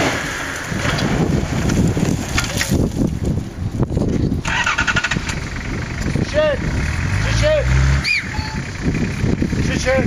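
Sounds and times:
engine revving under load: 0:04.4 - 0:10.0.

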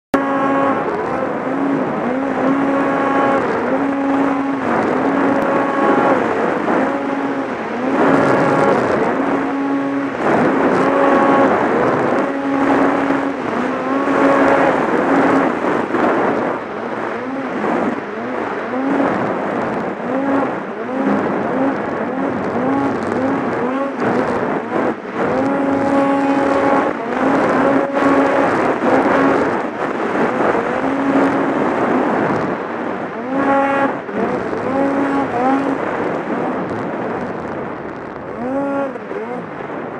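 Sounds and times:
constant rushing noise: 0:00.0 - 0:39.9
snowmobile engine revving: 0:00.1 - 0:37.0, 0:38.3 - 0:39.5.

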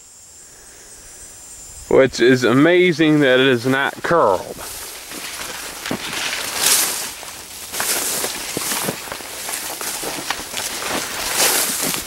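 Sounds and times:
corn leaves rustling: 0:01.9 - 0:12.0
leaves crackling: 0:01.9 - 0:12.0.

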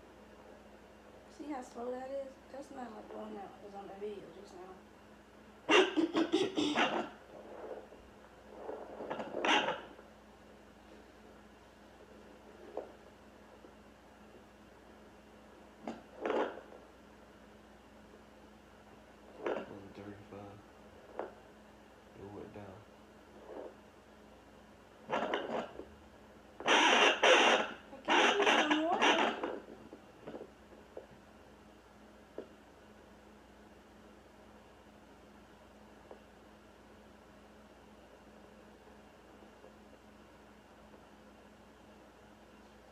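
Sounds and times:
faint steady low hum: 0:00.0 - 0:42.9
scratchy whooshing static: 0:06.9 - 0:09.9.

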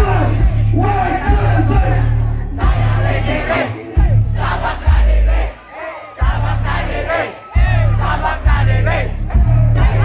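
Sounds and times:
crowd shouting and singing along: 0:00.0 - 0:10.0
live concert music with heavy bass: 0:00.0 - 0:10.0.

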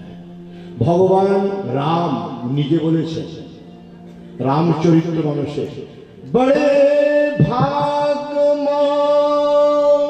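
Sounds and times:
man chanting through a microphone: 0:06.3 - 0:10.0.

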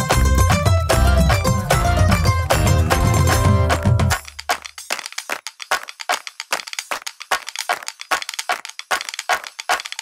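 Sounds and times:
sharp hand claps: 0:00.0 - 0:10.0.

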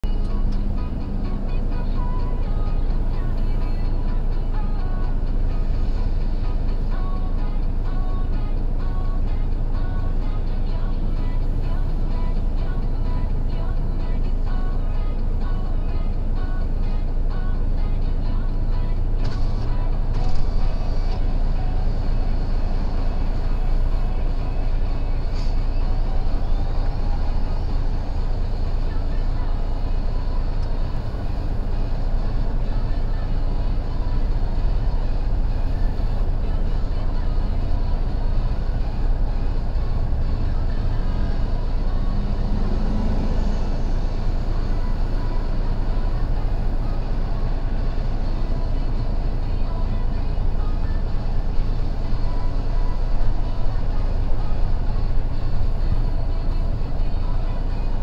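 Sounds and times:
music: 0:00.0 - 0:58.0
vehicle engine idling: 0:00.0 - 0:58.0.

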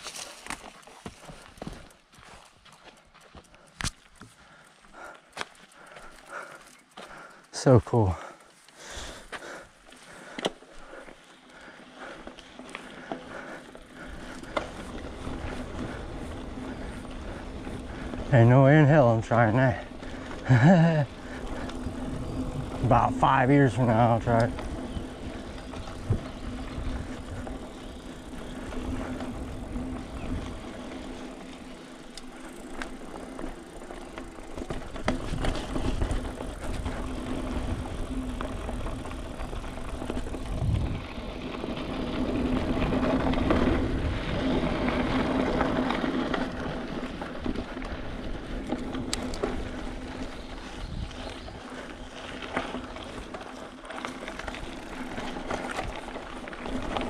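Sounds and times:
bike rattling: 0:00.0 - 0:57.0
tyres rolling on dirt: 0:00.0 - 0:57.0.

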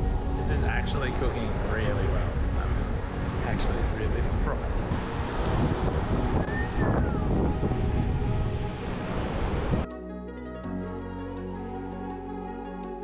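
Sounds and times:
surf: 0:00.0 - 0:09.8
faint music: 0:00.0 - 0:09.9
wind buffeting microphone: 0:00.0 - 0:09.9.

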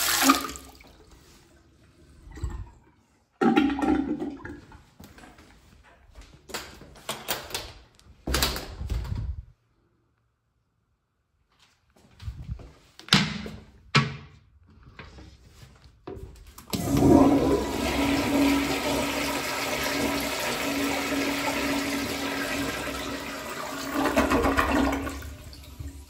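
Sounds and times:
toilet flushing: 0:00.0 - 0:05.0, 0:16.7 - 0:26.0.

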